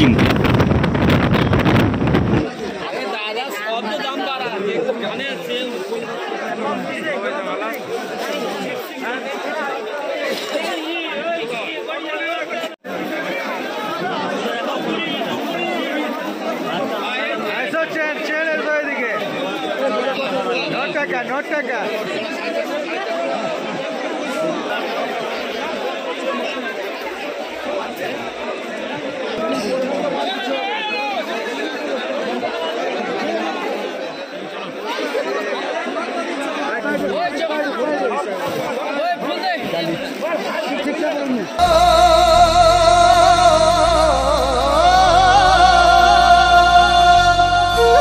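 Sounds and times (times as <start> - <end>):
crowd chatter: 0.0 - 48.0.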